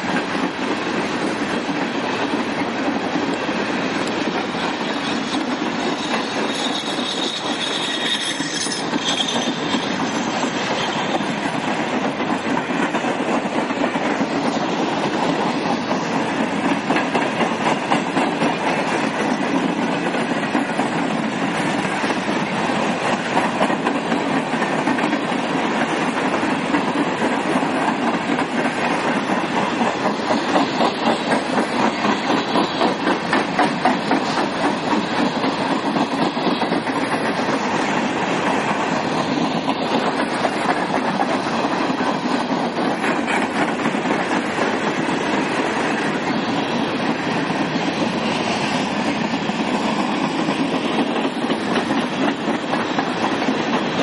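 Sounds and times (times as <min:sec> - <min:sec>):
freight train wheels rumbling: 0:00.0 - 0:54.0
wheels clacking over rail joints: 0:00.0 - 0:54.0
faint high wheel squeal: 0:04.8 - 0:11.2.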